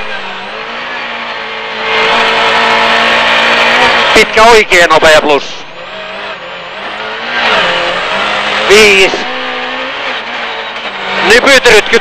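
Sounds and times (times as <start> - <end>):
car engine at high revs: 0.0 - 12.0
road and underbody noise: 0.0 - 12.0.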